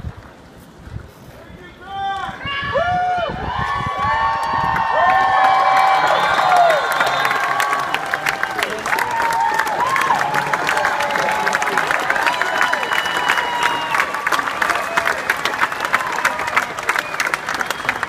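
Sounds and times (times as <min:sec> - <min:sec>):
crowd cheering and whooping: 0:02.5 - 0:18.0
people clapping: 0:03.7 - 0:18.0.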